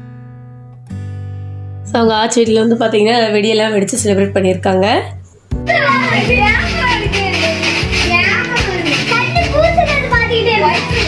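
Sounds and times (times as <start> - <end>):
music playing: 1.8 - 11.0
children chattering and calling: 5.6 - 11.0.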